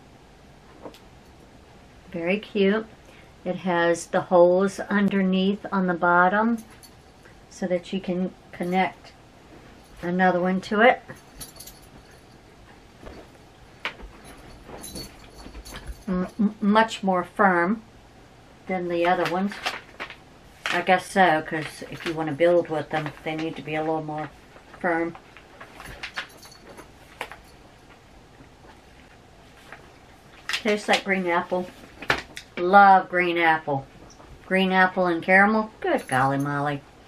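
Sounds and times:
low rumble of movement: 0:08.1 - 0:16.8
light jingles: 0:09.7 - 0:16.6, 0:25.6 - 0:28.0.

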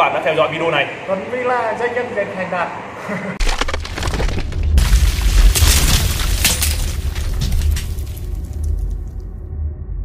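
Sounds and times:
crashing crumbling debris: 0:03.4 - 0:09.2
deep boom and rumble: 0:03.8 - 0:10.0.

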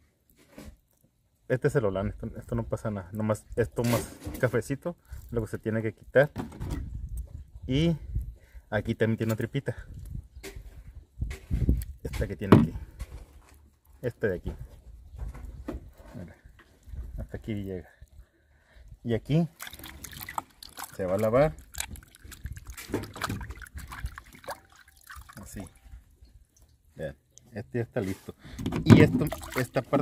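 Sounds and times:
water splashing in glass bowl: 0:19.5 - 0:25.8, 0:29.0 - 0:30.0.

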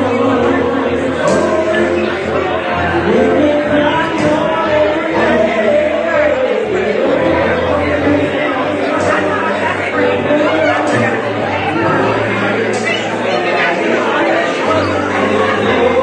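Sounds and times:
many people talking: 0:00.0 - 0:16.0
person singing: 0:00.0 - 0:16.0.

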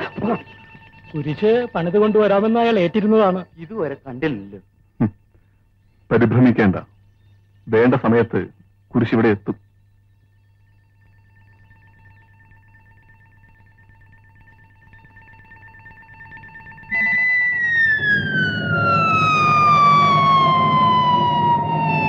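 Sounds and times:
faint steady high tone: 0:00.0 - 0:22.0
loud note gliding downward: 0:16.9 - 0:22.0.

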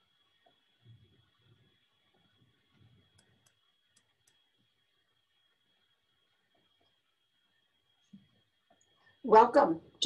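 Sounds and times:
faint high-pitched whine: 0:00.0 - 0:10.0
faint sharp clicks: 0:03.1 - 0:04.4.

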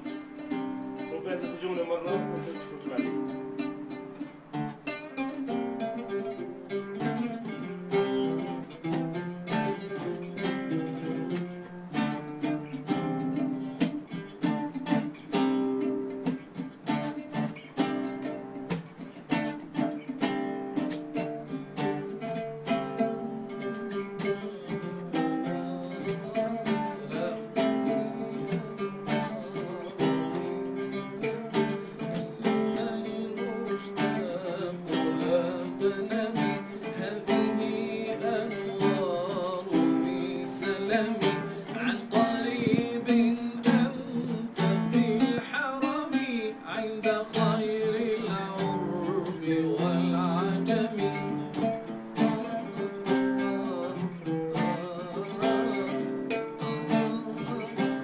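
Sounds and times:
plucked string instrument melody: 0:00.0 - 0:58.0.

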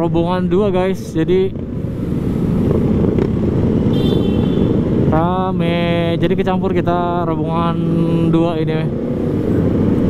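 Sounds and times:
motorcycle engines rumbling: 0:00.0 - 0:10.0.

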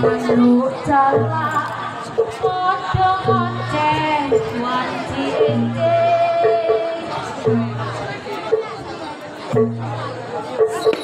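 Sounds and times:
loud crowd chatter: 0:00.0 - 0:11.0
traditional accompaniment music: 0:00.0 - 0:11.0.

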